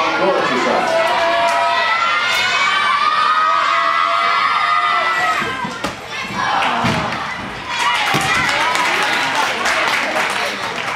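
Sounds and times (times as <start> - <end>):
crowd cheering: 0.0 - 10.9.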